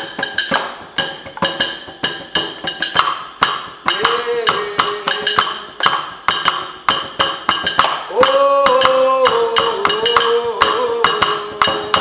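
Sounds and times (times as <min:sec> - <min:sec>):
hand percussion knocks: 0:00.0 - 0:12.0
person singing a long note: 0:04.0 - 0:05.4, 0:08.1 - 0:12.0.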